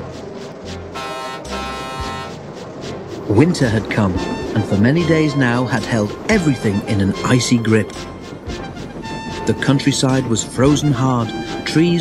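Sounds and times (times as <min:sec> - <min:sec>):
background music: 0:00.0 - 0:12.0
locomotive horn: 0:00.9 - 0:02.4, 0:06.5 - 0:09.7.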